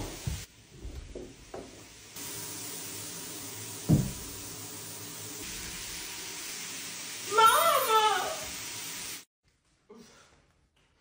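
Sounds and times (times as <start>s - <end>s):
shower spraying water: 0.0s - 9.3s.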